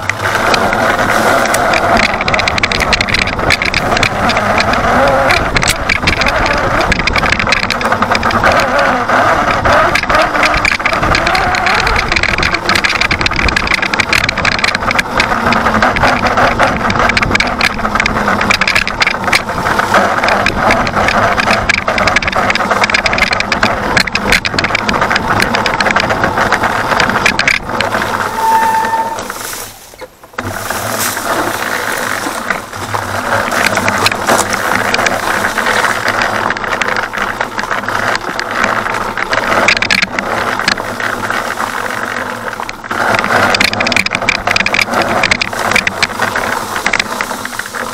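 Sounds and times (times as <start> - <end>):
bike body rattling: 0.0 - 47.9
dirt bike tyre and drivetrain noise: 0.0 - 47.9.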